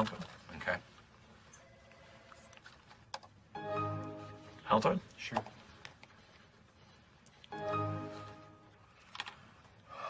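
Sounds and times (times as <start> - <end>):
computer chime: 3.6 - 4.8, 7.6 - 8.8.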